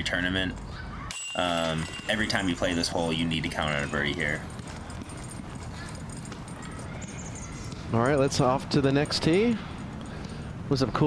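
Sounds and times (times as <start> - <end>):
outdoor background noise: 0.0 - 11.0
footsteps on dirt and leaves: 1.6 - 8.2.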